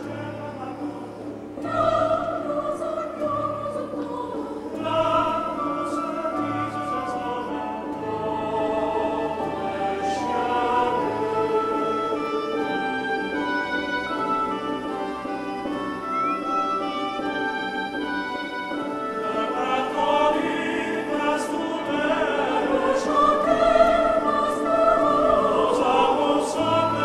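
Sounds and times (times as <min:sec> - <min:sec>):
choral music over loudspeakers: 0:00.0 - 0:27.0.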